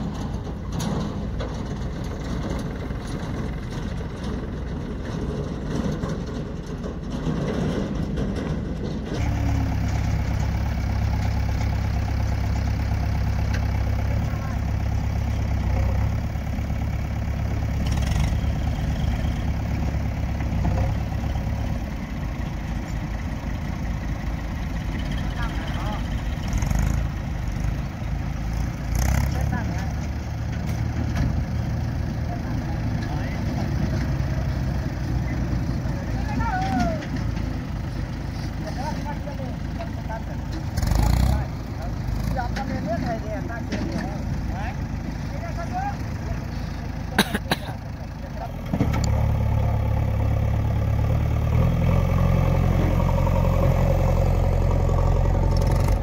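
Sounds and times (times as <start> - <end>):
diesel engine rumbling: 0.0 - 56.0.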